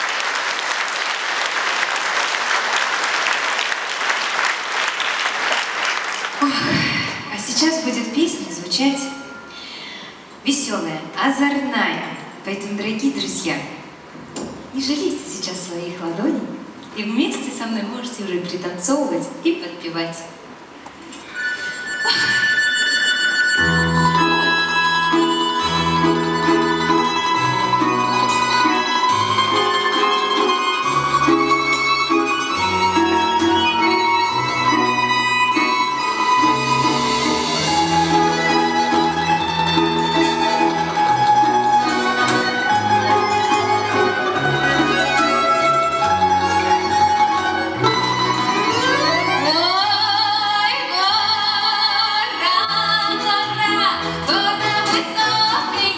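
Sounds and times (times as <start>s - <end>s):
folk instrument ensemble playing: 20.5s - 55.9s.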